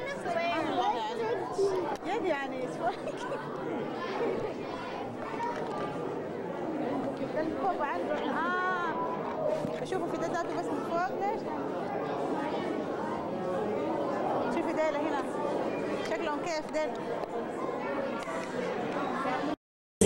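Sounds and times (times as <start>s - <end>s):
overlapping chatter: 0.0s - 19.6s.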